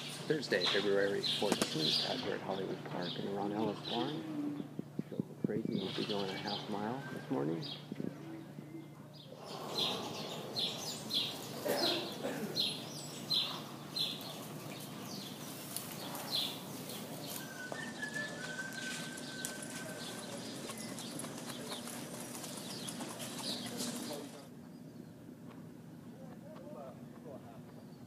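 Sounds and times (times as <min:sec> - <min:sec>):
horse hooves clip-clopping: 0:12.9 - 0:24.5.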